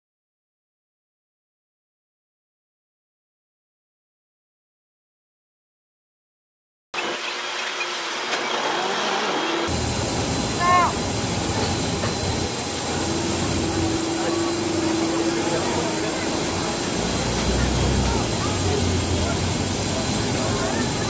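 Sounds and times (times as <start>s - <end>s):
aircraft ground equipment noise: 7.0s - 21.0s
high-pitched whine: 7.0s - 21.0s
low hum: 8.4s - 21.0s
deep rumble: 9.7s - 21.0s.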